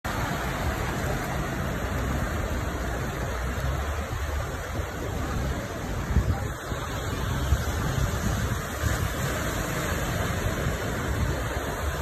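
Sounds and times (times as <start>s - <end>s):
traffic rumbling through floodwater: 0.0s - 12.0s
water rushing on a flooded street: 0.0s - 12.0s.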